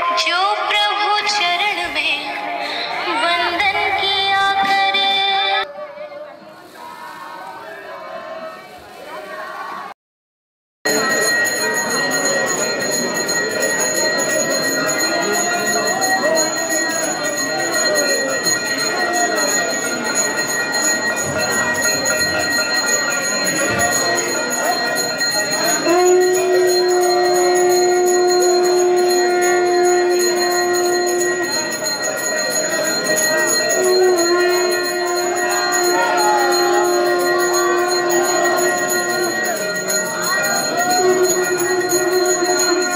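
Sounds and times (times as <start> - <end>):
crowd voices: 0.0 - 10.0, 10.9 - 42.9
long steady held note: 10.9 - 42.9
temple bells ringing: 10.9 - 42.9.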